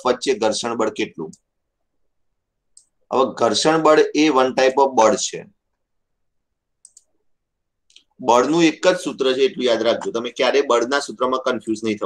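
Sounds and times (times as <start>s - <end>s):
man speaking: 0.0s - 1.4s, 3.1s - 5.6s, 8.0s - 12.0s.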